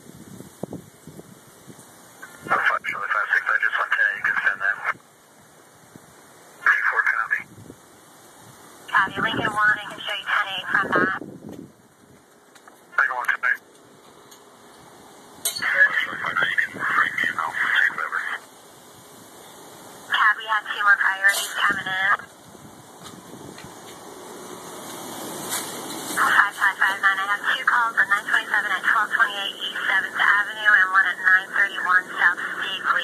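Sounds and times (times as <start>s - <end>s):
radio hiss: 2.0s - 11.2s, 12.6s - 14.2s, 14.8s - 23.0s, 23.6s - 33.0s
tinny radio voices: 2.2s - 5.0s, 6.6s - 7.5s, 8.9s - 11.2s, 12.9s - 13.6s, 15.5s - 18.5s, 20.1s - 22.3s, 26.2s - 33.0s.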